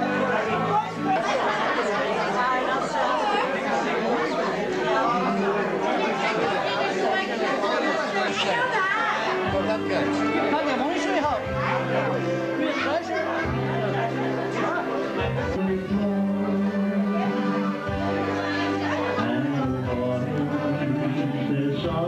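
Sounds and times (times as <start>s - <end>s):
background music: 0.0s - 22.0s
crowd talking over each other: 0.0s - 22.0s.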